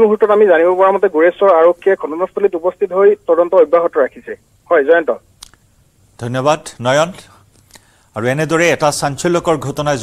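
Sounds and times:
person speaking over telephone line: 0:00.0 - 0:05.2.

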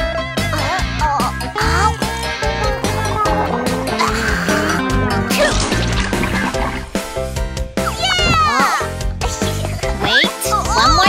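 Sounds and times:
cartoon background music: 0:00.1 - 0:11.0.

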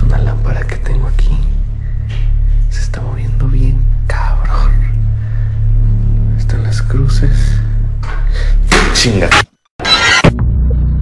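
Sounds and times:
low droning music: 0:00.0 - 0:09.4, 0:10.2 - 0:11.0
person whispering: 0:02.7 - 0:05.0.

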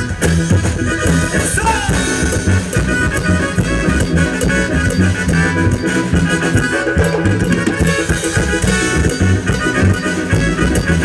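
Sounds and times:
latin dance band playing: 0:00.0 - 0:11.0.

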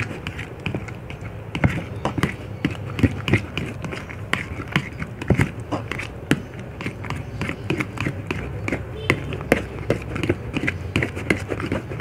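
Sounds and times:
spatula stirring slime: 0:00.0 - 0:12.0.

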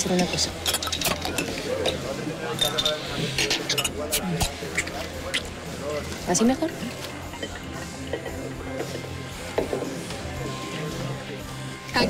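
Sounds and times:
indistinct voices in a bar: 0:00.0 - 0:12.0.

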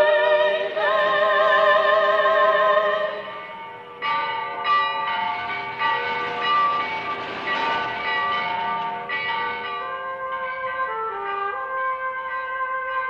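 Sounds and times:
bells ringing: 0:00.0 - 0:13.0.

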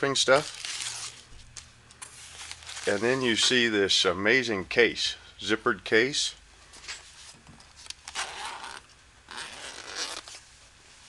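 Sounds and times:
zipper pulled open: 0:08.0 - 0:10.4.

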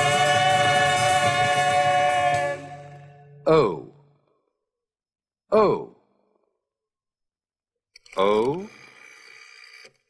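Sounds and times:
person saying oh: 0:03.5 - 0:03.9, 0:05.5 - 0:06.0.

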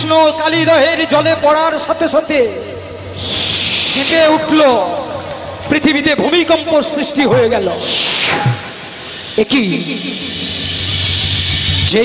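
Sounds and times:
man making hissing shhh sound: 0:00.0 - 0:00.8, 0:03.2 - 0:05.2, 0:07.8 - 0:11.4.

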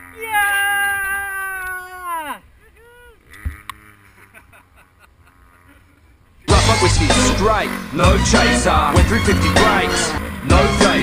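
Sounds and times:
quiet laughter: 0:02.2 - 0:06.5.

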